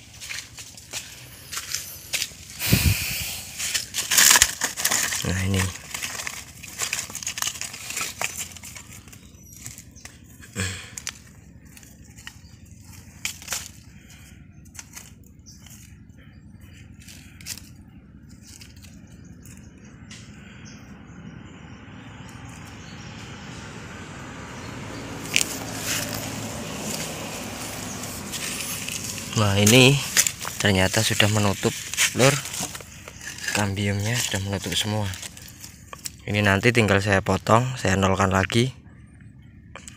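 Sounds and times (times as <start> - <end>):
dry leaves crackling and rustling: 0.0 - 20.2, 23.7 - 37.0.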